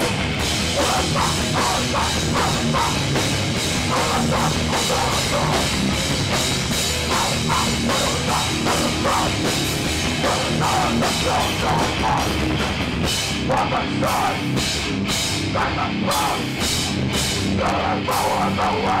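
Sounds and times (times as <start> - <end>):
punk band playing: 0.0 - 19.0.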